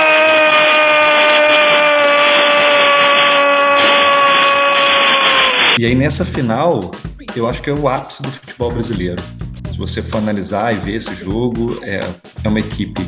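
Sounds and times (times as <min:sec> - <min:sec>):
commentator's long held shout: 0:00.0 - 0:05.6
stadium crowd roar: 0:00.0 - 0:05.8.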